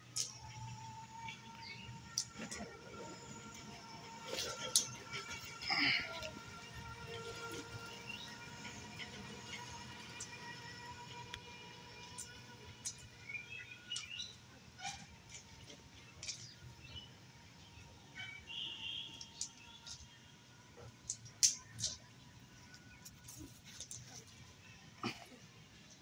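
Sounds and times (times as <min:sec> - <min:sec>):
birds chirping: 0:00.1 - 0:26.0.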